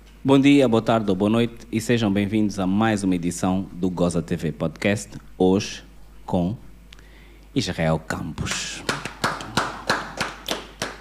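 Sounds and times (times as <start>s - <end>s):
hands clapping: 8.4s - 11.0s.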